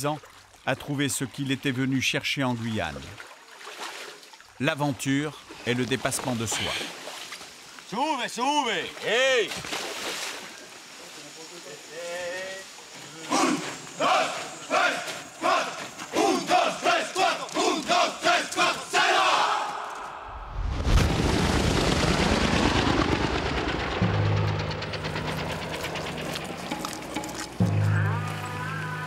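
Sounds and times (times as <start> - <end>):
soldiers shouting cadence in unison: 13.0 - 20.2
helicopter rotor chopping: 22.0 - 27.7.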